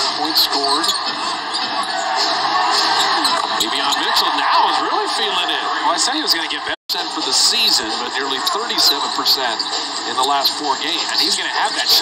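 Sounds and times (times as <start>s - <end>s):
commentator talking: 0.0s - 1.0s, 3.6s - 12.0s
arena crowd noise: 0.0s - 12.0s.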